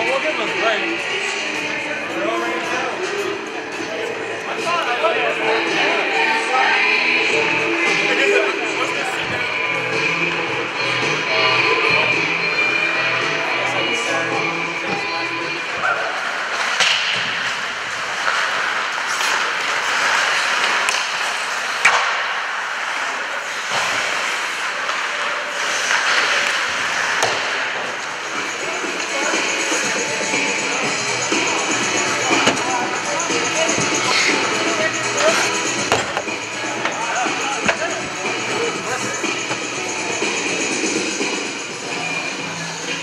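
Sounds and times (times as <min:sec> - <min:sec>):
music: 0:00.0 - 0:23.0, 0:24.9 - 0:43.0
hockey sticks and puck clacking: 0:15.7 - 0:41.4
skate blades scraping ice: 0:16.1 - 0:30.3.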